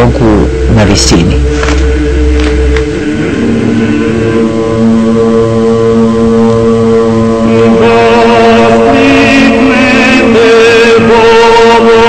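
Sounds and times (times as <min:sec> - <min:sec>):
choir chanting long notes: 0:01.3 - 0:12.0
wavering sung voice: 0:07.4 - 0:12.0.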